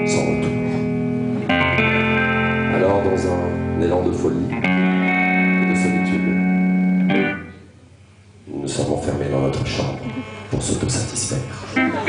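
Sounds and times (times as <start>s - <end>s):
band sustained chord: 0.0s - 7.6s
man speaking over loudspeakers: 8.5s - 11.8s.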